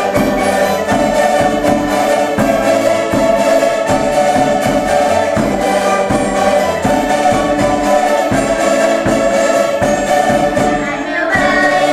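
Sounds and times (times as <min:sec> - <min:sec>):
bass drum beat: 0:00.0 - 0:11.8
strummed string ensemble: 0:00.0 - 0:11.9
women singing: 0:10.0 - 0:11.9.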